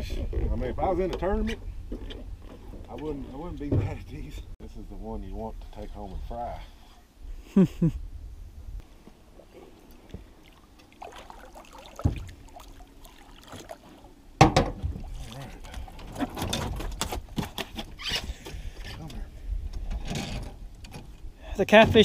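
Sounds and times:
fish splashing in water: 9.6s - 14.2s
water dripping: 9.7s - 14.0s
knocks on boat: 12.0s - 12.3s, 14.4s - 15.0s.

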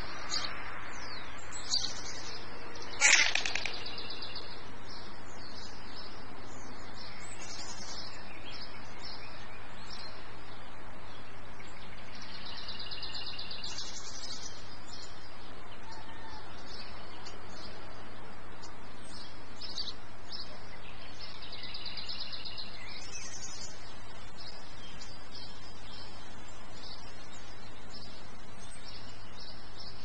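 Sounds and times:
background hiss: 0.0s - 30.0s
small songbirds chirping: 0.0s - 30.0s.

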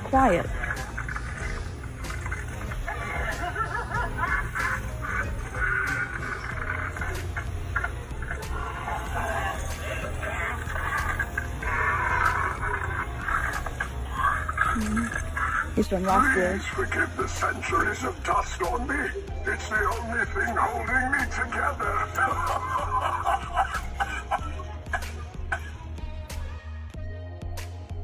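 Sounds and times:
murmuring voices: 0.0s - 26.3s
background music: 0.0s - 28.0s.

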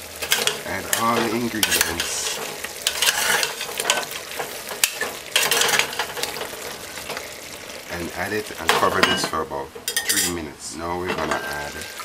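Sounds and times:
meat sizzling in hot oil: 0.0s - 12.0s.

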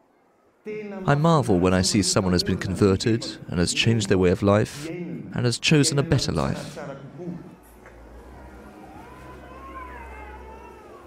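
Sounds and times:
small child crying: 8.4s - 11.0s.

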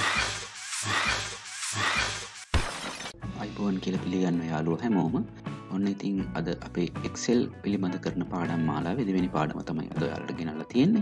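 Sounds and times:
glass breaking crash: 2.5s - 3.2s.

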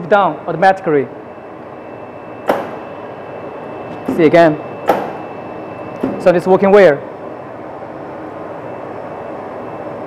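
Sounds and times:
machine humming with high whine: 0.0s - 10.0s.

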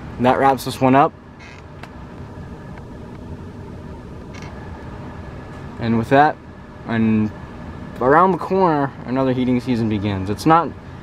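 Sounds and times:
furnace blower running: 0.0s - 11.0s.

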